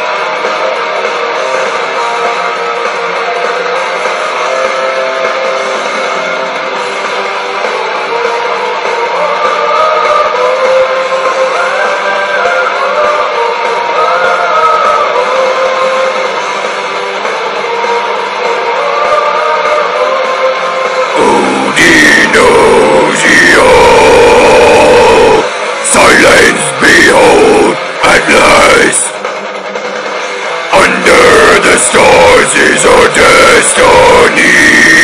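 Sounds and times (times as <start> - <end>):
melodic metal guitar lead: 0.0 - 35.0
harsh vocals: 9.0 - 16.3, 18.5 - 29.3, 30.5 - 35.0.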